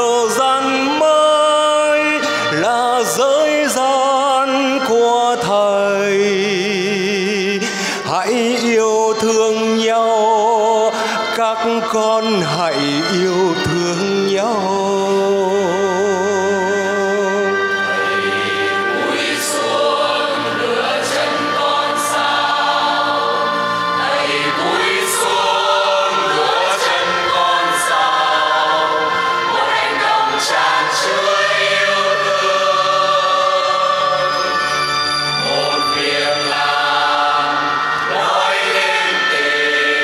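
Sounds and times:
church choir singing a hymn: 0.0 - 40.0.

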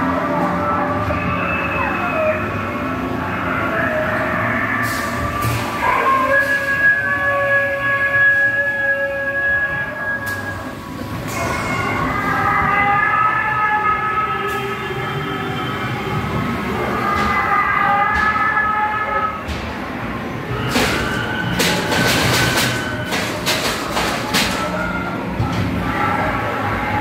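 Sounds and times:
ride car rumbling on track: 0.0 - 27.0.

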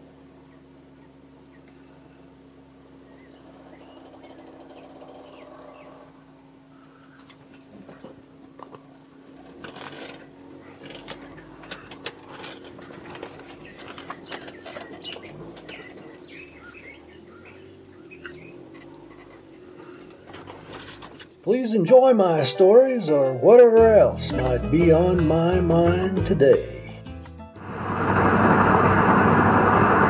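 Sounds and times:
car engine humming: 0.0 - 21.5, 23.4 - 30.0
tyres rattling over cobblestones: 9.4 - 21.4.

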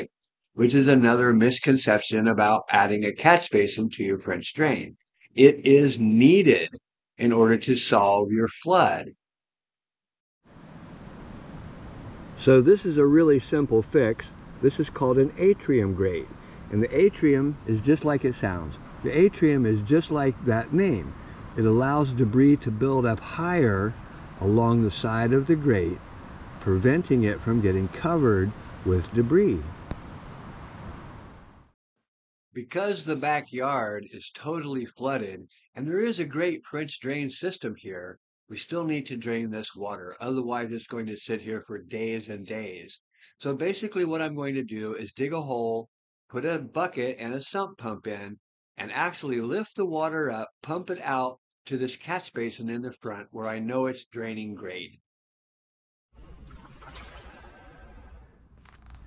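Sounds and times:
outdoor hiss: 10.5 - 31.8.

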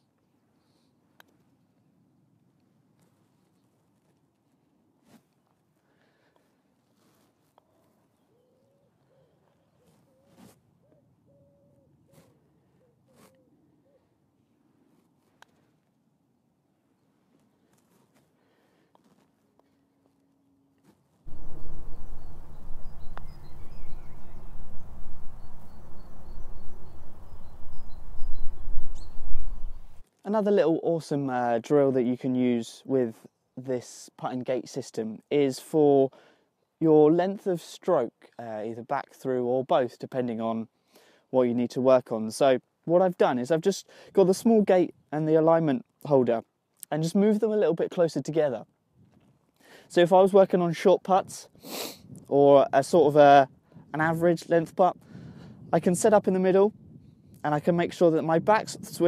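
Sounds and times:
bird hooting: 7.7 - 14.2, 21.3 - 30.0
wind buffeting microphone: 21.3 - 30.0, 54.9 - 59.0
golf putt click: 23.1 - 23.4.

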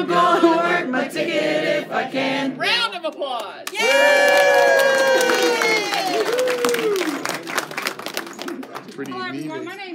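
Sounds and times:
small group clapping: 3.0 - 9.5.

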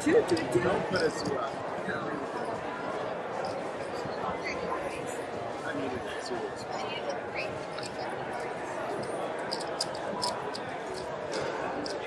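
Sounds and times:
cards and chips clicking: 9.4 - 12.0.

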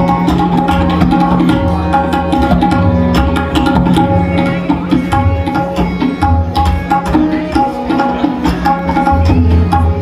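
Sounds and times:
harmonium: 0.0 - 10.0
tabla strokes: 0.0 - 10.0.

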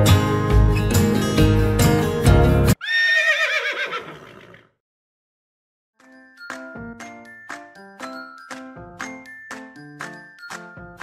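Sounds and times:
horse whinnying: 2.8 - 4.7.

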